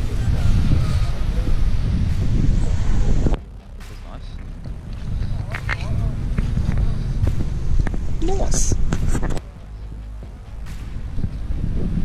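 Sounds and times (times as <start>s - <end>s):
people chatting faintly: 0.0s - 11.7s
wind buffeting microphone: 0.0s - 12.0s.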